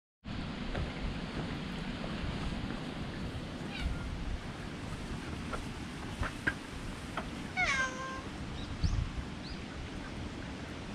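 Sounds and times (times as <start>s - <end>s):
cat meowing: 3.7s - 4.1s, 7.6s - 8.3s.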